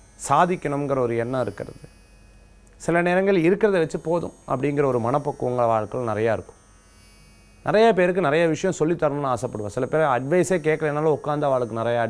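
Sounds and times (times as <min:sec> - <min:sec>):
faint electrical hum and buzz: 0:00.0 - 0:12.0
man speaking: 0:07.7 - 0:12.0.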